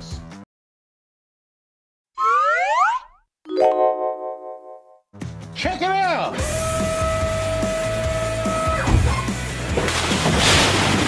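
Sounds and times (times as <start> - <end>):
upward pitched glide effect: 2.2 - 5.0.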